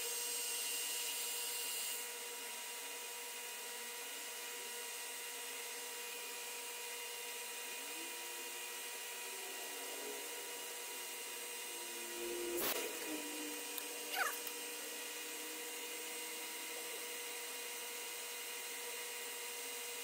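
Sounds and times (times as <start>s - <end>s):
metal lathe cutting: 3.6s - 20.0s.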